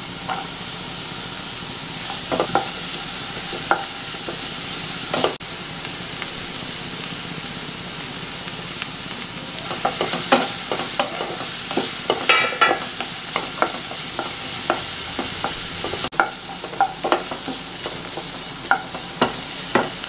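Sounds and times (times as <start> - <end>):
vegetables sizzling in oil: 0.0 - 20.0
spatula scraping and tapping pan: 0.3 - 0.5, 2.0 - 4.5, 5.1 - 5.4, 9.6 - 20.0.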